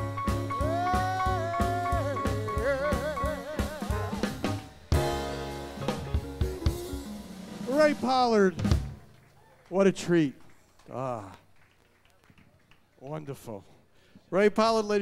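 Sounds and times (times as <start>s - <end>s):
drum kit hits: 0.0s - 9.1s.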